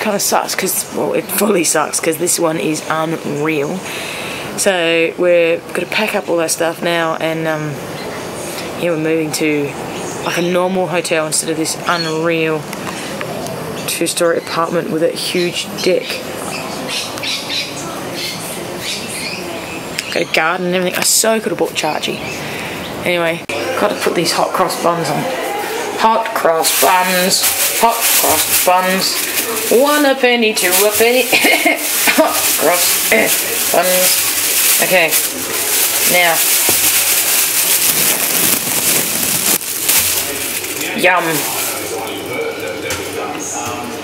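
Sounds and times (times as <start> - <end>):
birds calling: 11.8 - 20.8
plastic bag crinkling: 26.3 - 43.6.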